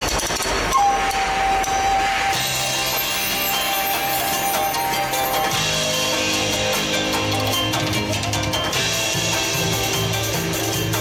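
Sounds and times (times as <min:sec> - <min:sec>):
noisy event hall ambience: 0:00.0 - 0:11.0
steady high tone: 0:00.7 - 0:11.0.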